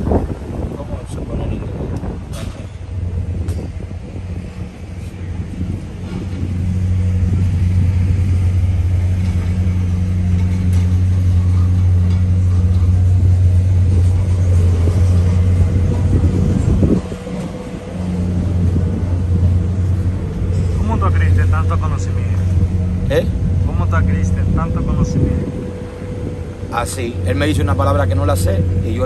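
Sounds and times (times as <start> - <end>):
loader engine humming: 0.0 - 29.0.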